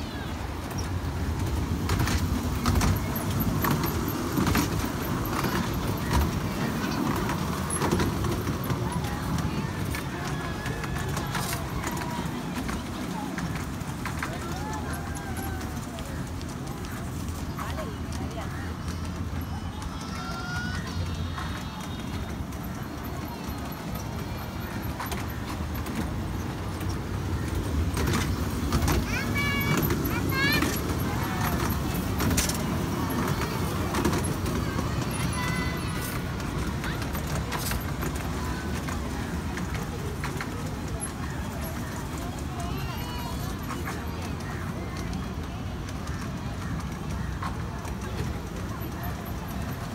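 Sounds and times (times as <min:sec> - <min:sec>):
children's voices: 0:00.0 - 0:49.9
miniature train rumbling on track: 0:00.0 - 0:49.9
train clicks: 0:00.0 - 0:49.9.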